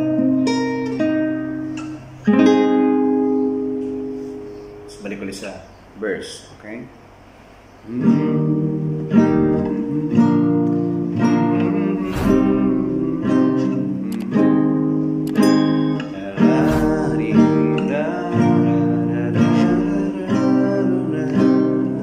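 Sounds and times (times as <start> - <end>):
acoustic guitar chords: 0.0 - 5.4, 7.1 - 22.0.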